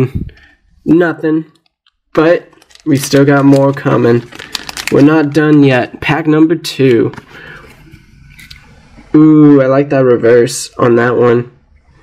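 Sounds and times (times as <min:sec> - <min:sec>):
trading cards rustling and sliding: 0:02.5 - 0:05.7.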